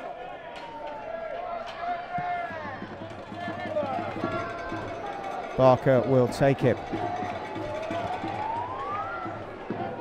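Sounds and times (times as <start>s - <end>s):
distant players shouting: 0.0s - 10.0s.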